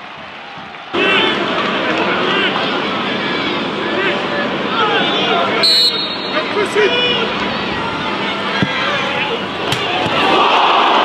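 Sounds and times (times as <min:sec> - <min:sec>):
crowd shouting: 0:00.3 - 0:11.0.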